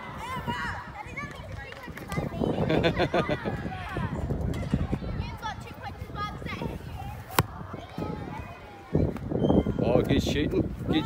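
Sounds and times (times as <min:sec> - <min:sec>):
children playing: 0:00.0 - 0:09.8
football being kicked: 0:07.3 - 0:07.6.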